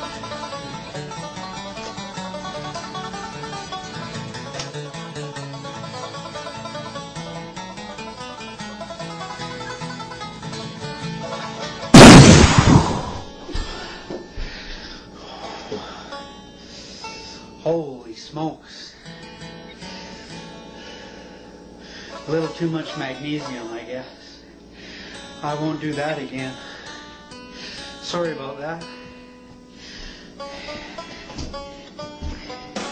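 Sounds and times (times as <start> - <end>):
banjo music: 0.0 - 12.0, 22.0 - 23.9, 30.4 - 32.9
firework blast: 12.0 - 13.4.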